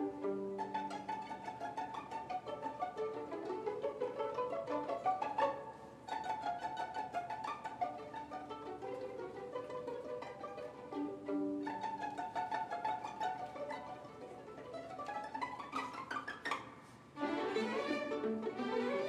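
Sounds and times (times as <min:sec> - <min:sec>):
string orchestra playing: 0:00.0 - 0:19.0.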